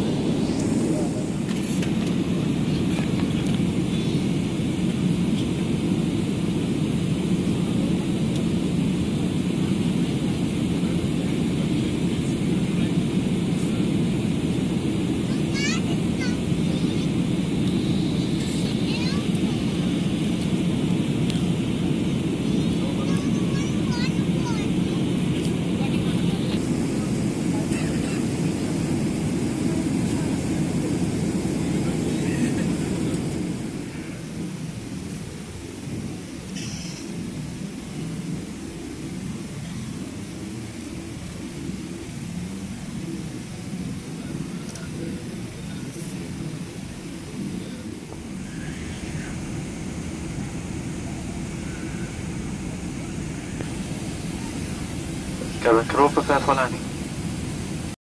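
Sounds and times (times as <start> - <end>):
airplane cabin roar: 0.0 - 58.0.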